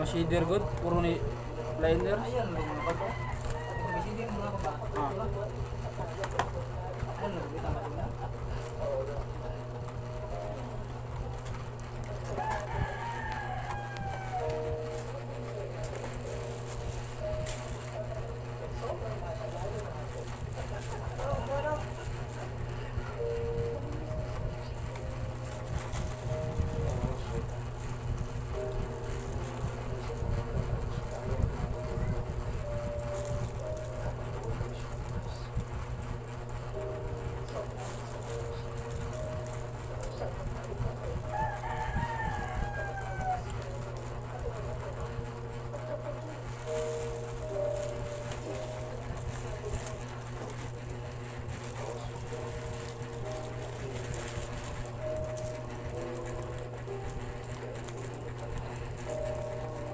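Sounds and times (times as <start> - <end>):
faint tune: 0.0 - 59.9
steady low hum: 0.0 - 59.9
rooster crowing: 2.3 - 4.6, 12.3 - 14.6, 41.2 - 43.7.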